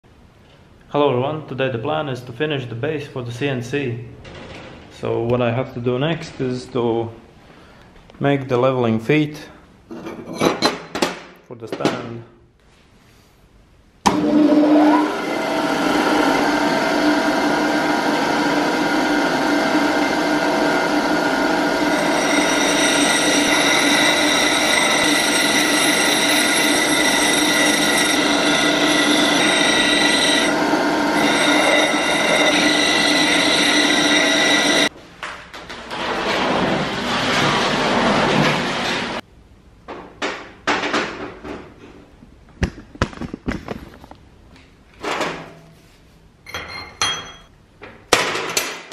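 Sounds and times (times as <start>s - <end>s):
bench grinder whining: 14.1s - 34.9s
rough grinding noise: 14.2s - 34.9s, 35.9s - 39.2s.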